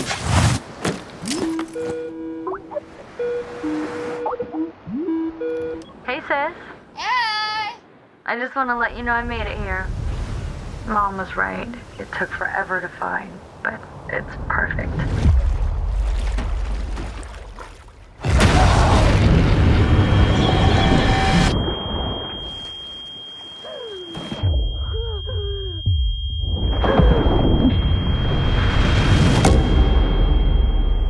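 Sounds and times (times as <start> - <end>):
loud boom: 18.2 - 22.2
held high tone: 20.3 - 27.8.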